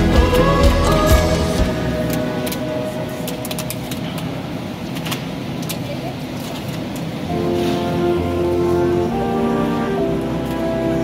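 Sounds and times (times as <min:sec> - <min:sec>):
murmur of shoppers' voices: 0:01.7 - 0:11.0.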